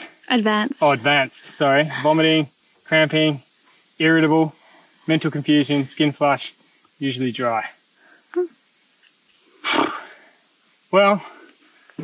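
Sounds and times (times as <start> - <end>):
high insect chorus: 0.0 - 12.0
short breathy hiss: 4.5 - 5.1, 9.4 - 10.5.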